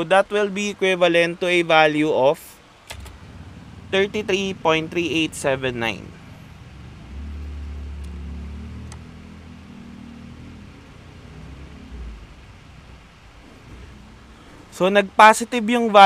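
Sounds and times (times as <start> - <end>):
faint hum: 0.0 - 16.0
low motor rumble: 2.7 - 15.6.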